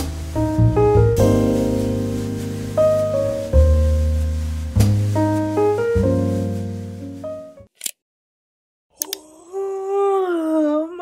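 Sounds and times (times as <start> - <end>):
woman yawning: 9.0 - 11.0.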